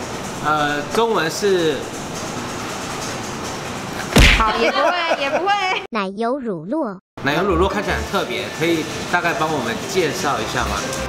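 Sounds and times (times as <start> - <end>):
ventilation fans rushing: 0.0 - 5.7, 7.2 - 11.0.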